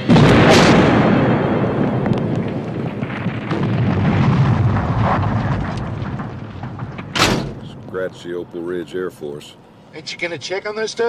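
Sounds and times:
rumbling explosion blast: 0.0 - 8.3
fire crackling: 0.0 - 10.5.

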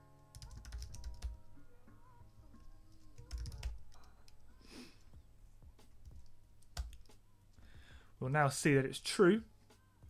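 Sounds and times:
quiet background music: 0.0 - 10.0
computer keyboard typing: 0.3 - 1.4, 3.1 - 4.4, 6.0 - 7.1.

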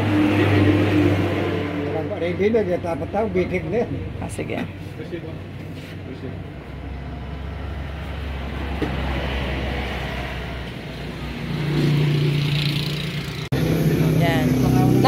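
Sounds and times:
vehicle engine running: 10.6 - 15.0.

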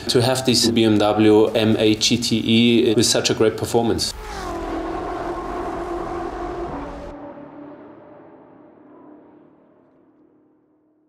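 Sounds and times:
race car passing by: 3.3 - 11.0
low hum: 4.1 - 11.0.

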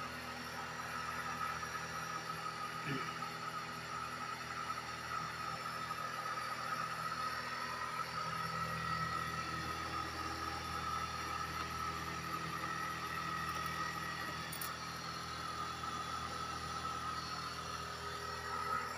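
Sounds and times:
high-pitched whine: 12.2 - 18.9.

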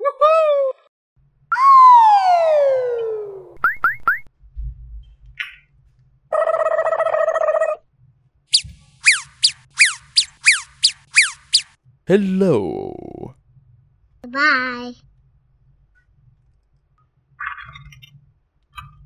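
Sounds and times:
short falling chirps: 8.5 - 11.7
slide whistle glide: 8.5 - 11.7
rising zips: 8.6 - 11.7.

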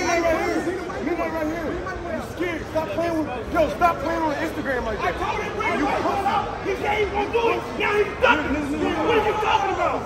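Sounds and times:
crowd of overlapping voices: 0.0 - 10.0.

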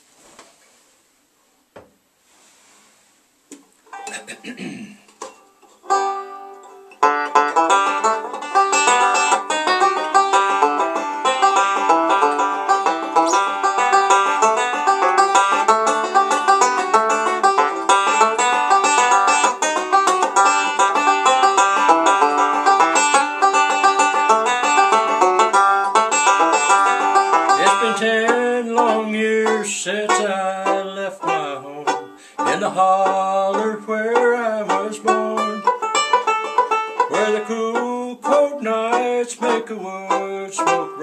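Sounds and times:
finger-picked banjo notes: 3.9 - 4.4, 5.2 - 41.0
banjo chord ringing: 5.9 - 41.0.

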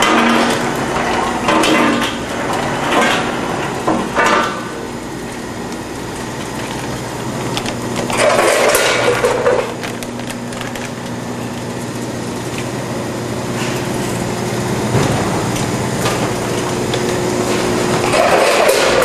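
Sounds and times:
packaging machinery humming: 0.0 - 19.0.

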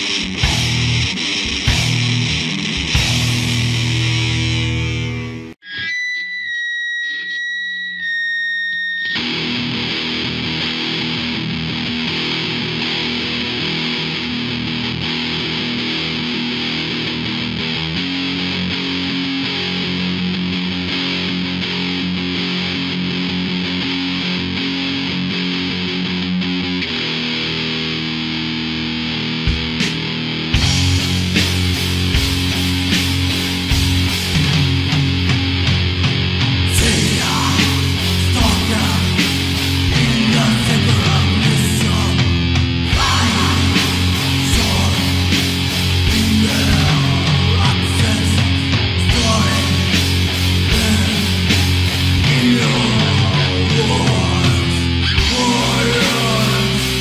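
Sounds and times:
punk band playing: 0.0 - 5.6, 28.9 - 57.0
held high guitar tone: 0.0 - 17.6, 28.3 - 57.0.

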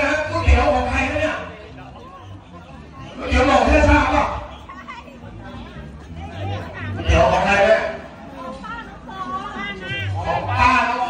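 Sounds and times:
people chatting quietly: 0.0 - 11.0.

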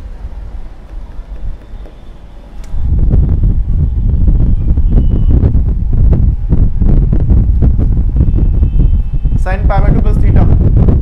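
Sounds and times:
marker writing on whiteboard: 0.7 - 2.3.

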